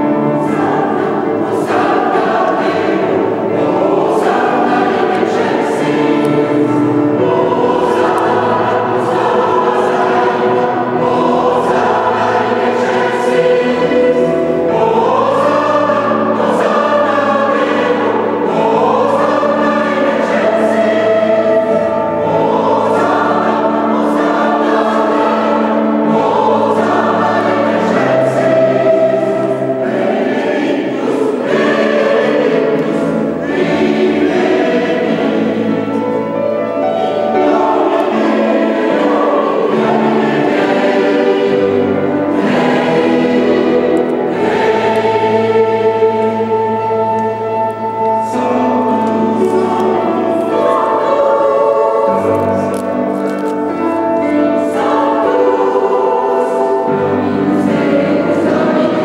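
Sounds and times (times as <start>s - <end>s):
mixed choir singing: 0.0s - 59.0s.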